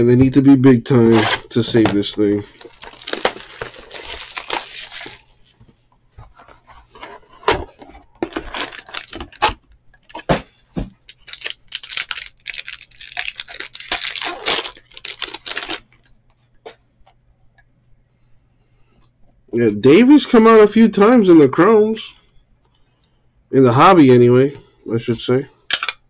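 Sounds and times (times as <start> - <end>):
cardboard and foil tearing: 1.0 - 5.4, 8.2 - 9.6, 11.1 - 15.8.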